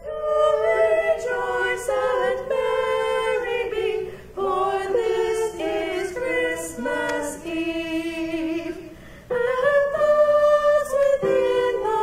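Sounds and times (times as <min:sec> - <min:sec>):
choir singing sustained phrases: 0:00.0 - 0:12.0
singers breathing: 0:04.0 - 0:04.4, 0:08.8 - 0:09.4.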